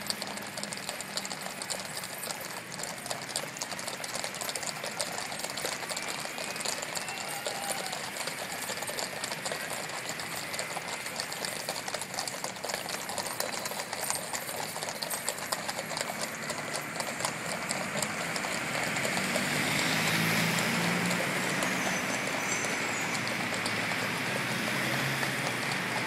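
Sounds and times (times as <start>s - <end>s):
horse hooves clip-clopping on asphalt: 0.0s - 26.0s.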